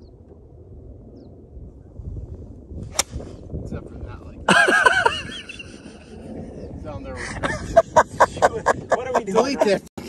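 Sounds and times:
golf club striking ball: 2.9 - 3.3.

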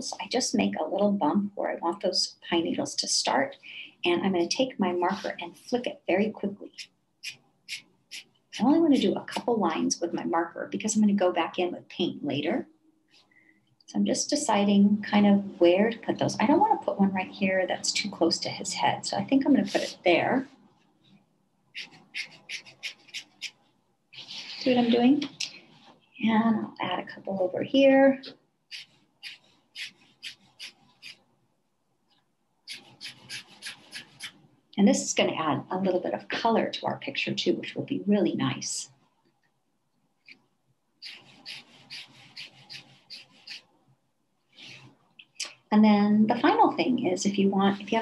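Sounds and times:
marker rubbing on paper: 6.6 - 9.4, 19.5 - 20.1, 21.7 - 23.6, 28.7 - 31.2, 32.7 - 34.4, 41.0 - 43.7
marker scratching on paper: 6.6 - 9.4, 19.5 - 20.1, 21.7 - 23.6, 28.7 - 31.2, 32.7 - 34.4, 41.0 - 43.7.

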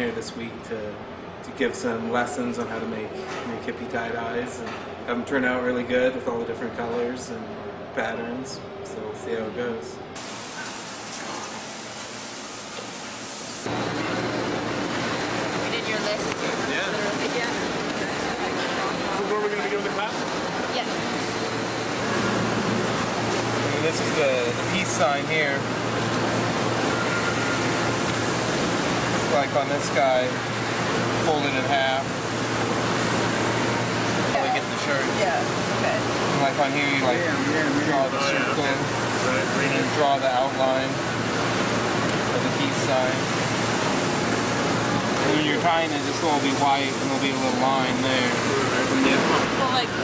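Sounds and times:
deep room noise: 0.0 - 50.0
factory ventilation and machinery: 0.0 - 50.0.

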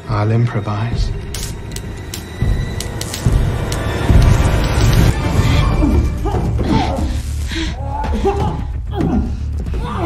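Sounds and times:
dark tense film score: 0.0 - 10.0
sharp clicks: 1.3 - 3.9.

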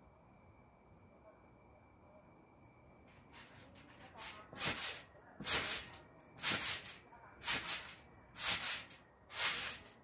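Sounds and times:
trampoline creaking and swishing: 3.2 - 10.0.

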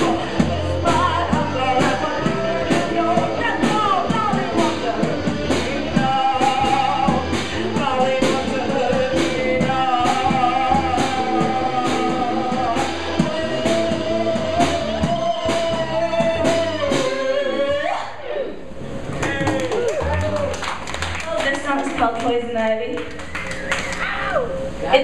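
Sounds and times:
woman singing: 0.0 - 17.7
live rock band: 0.0 - 17.9.

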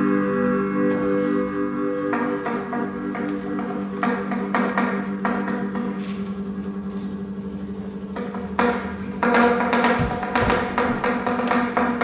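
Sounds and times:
low electronic drone: 0.0 - 12.0
percussive taps and knocks: 2.1 - 6.0, 8.2 - 12.0
low thumps: 8.1 - 12.0.

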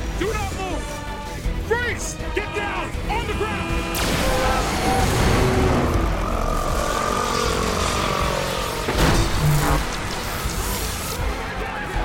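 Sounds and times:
electrical crackling discharge: 4.0 - 11.3.

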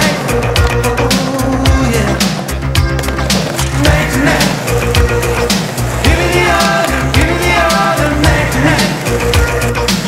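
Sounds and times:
rock music with drum beat: 0.0 - 10.0
skateboard rolling: 0.0 - 10.0.

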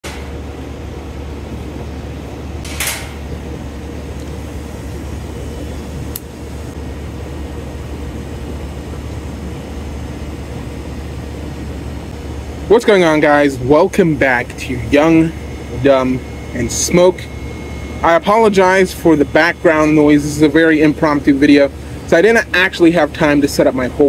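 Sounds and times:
low mechanical machinery hum: 0.0 - 24.0
sharp click: 2.6 - 3.2.

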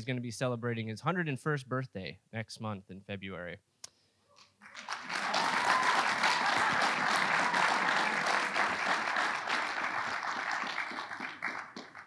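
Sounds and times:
audience applauding: 4.6 - 12.0.

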